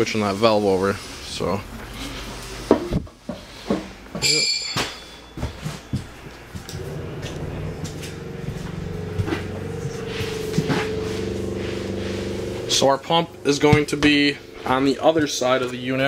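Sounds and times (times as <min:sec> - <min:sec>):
steady multi-tone hum: 0:00.0 - 0:16.0.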